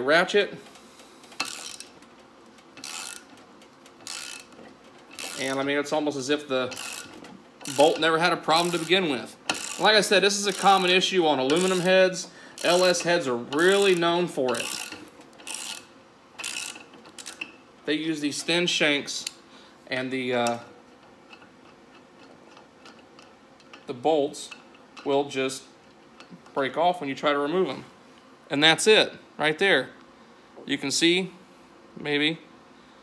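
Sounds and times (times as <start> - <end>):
ratchet wrench clicking: 0.7 - 2.0, 2.6 - 5.6, 6.7 - 17.5.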